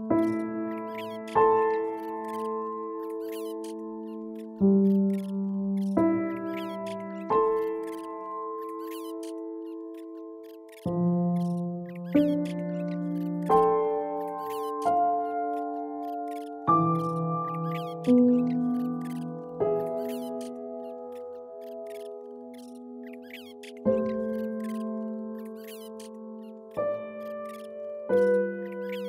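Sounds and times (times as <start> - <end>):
faint high chirps: 0.0 - 29.0
slow calm piano chords: 0.0 - 29.0.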